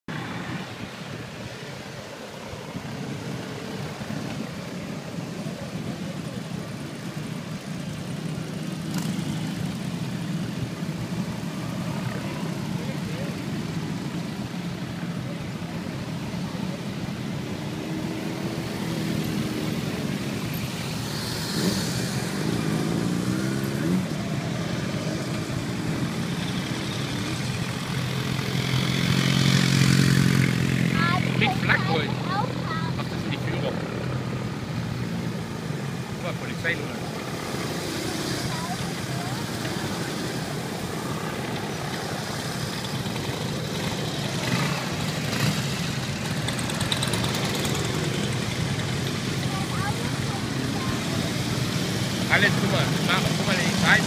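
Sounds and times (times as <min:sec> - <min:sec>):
motorcycles riding past: 0:00.1 - 0:54.0.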